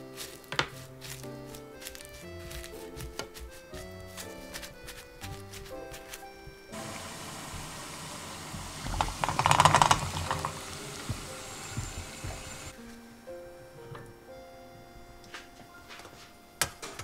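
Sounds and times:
light background music: 0.0s - 17.0s
water boiling hard in a pan: 6.7s - 12.8s
bubbling and splashing: 6.8s - 12.8s.

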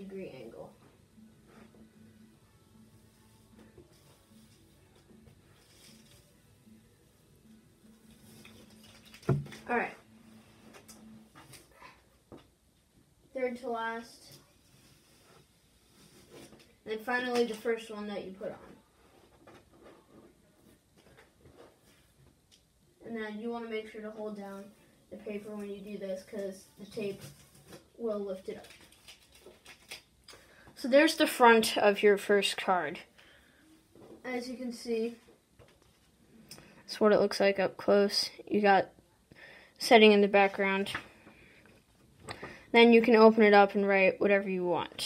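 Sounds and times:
tape being peeled off paper: 7.9s - 9.6s, 26.4s - 30.1s
tape peeling off paper: 28.5s - 30.1s.

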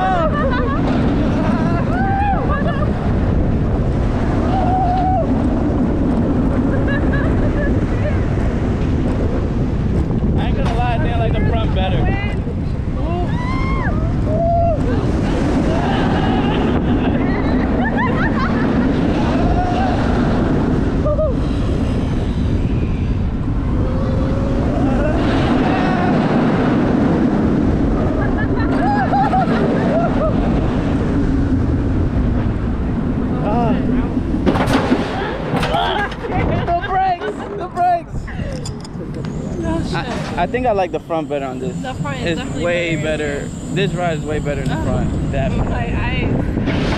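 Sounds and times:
riders yelling and whooping: 0.0s - 3.2s, 4.3s - 5.7s, 12.9s - 21.9s, 23.6s - 27.1s
roller coaster train rumbling: 0.0s - 46.9s
wind buffeting microphone: 0.0s - 46.9s.

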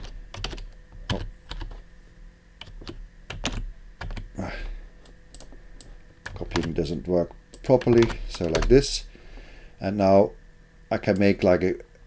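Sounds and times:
computer keyboard clicks: 0.0s - 1.8s, 2.6s - 4.3s, 5.0s - 5.5s, 6.2s - 6.8s, 7.5s - 8.8s.

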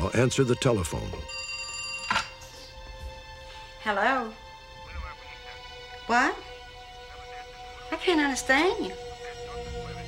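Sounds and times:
telephone ringing: 1.3s - 2.4s
background music drone: 2.0s - 10.0s.

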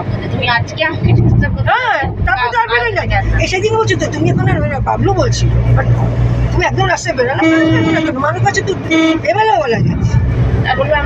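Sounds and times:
car interior drone: 0.0s - 11.0s
people talking: 0.0s - 11.0s.

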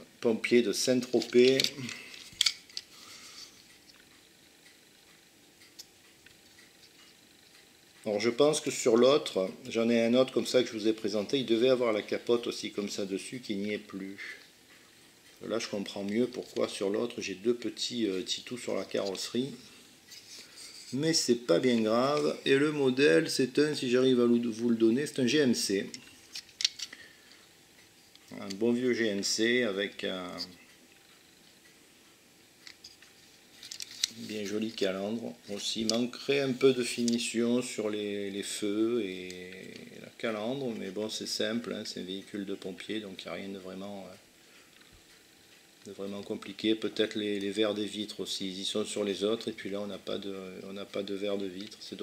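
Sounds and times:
toy handled with clicks and taps: 1.0s - 2.9s, 25.9s - 27.0s, 32.6s - 34.3s, 36.9s - 37.3s.

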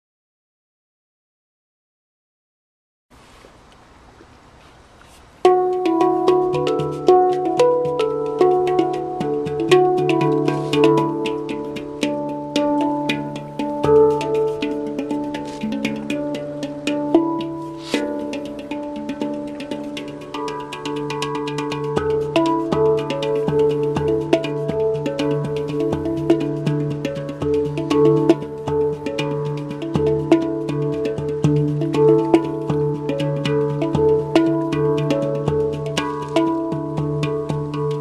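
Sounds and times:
handpan notes: 5.3s - 38.0s.

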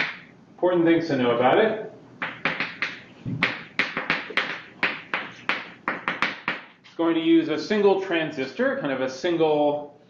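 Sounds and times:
chalk writing on blackboard: 2.2s - 6.8s.

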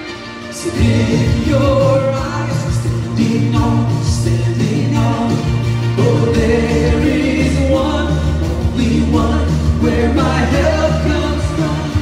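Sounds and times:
worship band playing: 0.0s - 12.0s.

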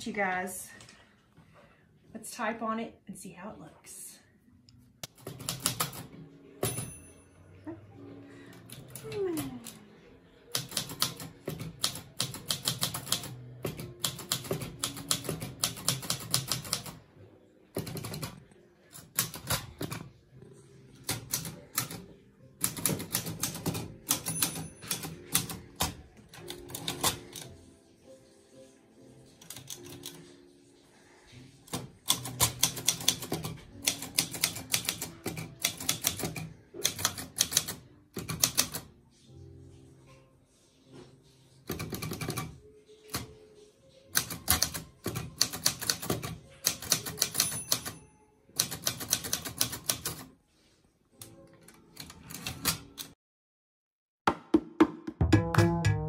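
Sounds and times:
typewriter key strikes: 22.6s - 27.4s, 44.2s - 48.0s
soft jazz music: 55.1s - 56.0s.

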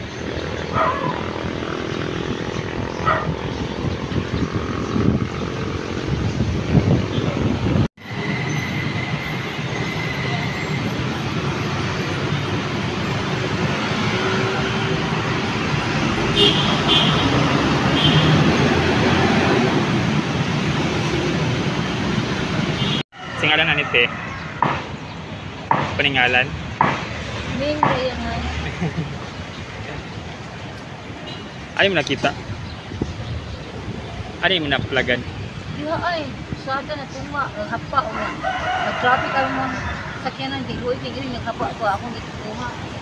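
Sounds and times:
city road traffic: 0.0s - 43.0s
outdoor background noise: 0.0s - 43.0s.

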